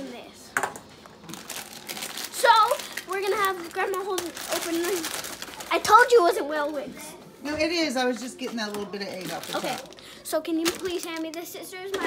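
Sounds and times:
plastic bag crinkling: 1.2s - 6.3s, 8.6s - 11.8s.

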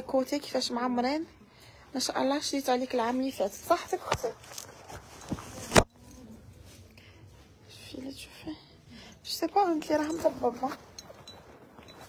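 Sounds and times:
woman whispering: 7.4s - 10.1s.

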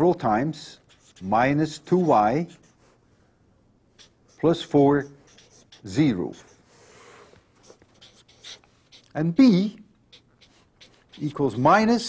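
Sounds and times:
marker writing on paper: 0.0s - 3.0s, 4.0s - 12.0s.

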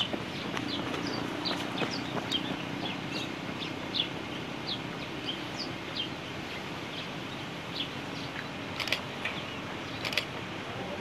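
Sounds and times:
birds chirping: 0.0s - 11.0s
low outdoor background noise: 0.0s - 11.0s.

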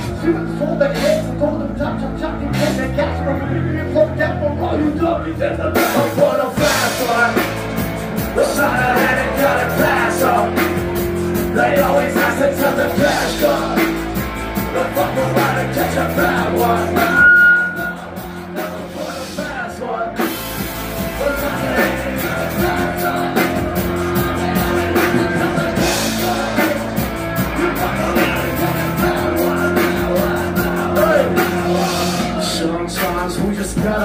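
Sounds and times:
person singing through pa: 0.0s - 7.6s, 8.2s - 20.4s, 21.0s - 34.0s
drums: 0.0s - 34.0s
punk rock band playing live: 0.0s - 34.0s.

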